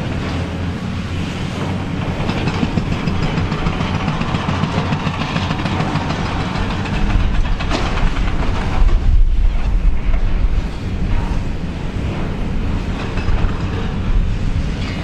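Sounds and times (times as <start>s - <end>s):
diesel engine under load: 0.0s - 15.0s.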